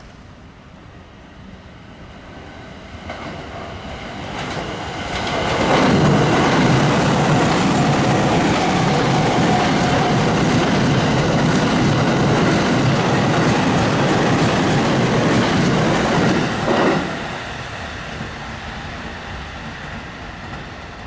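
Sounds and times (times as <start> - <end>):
electric train passing at speed: 0.0 - 21.0.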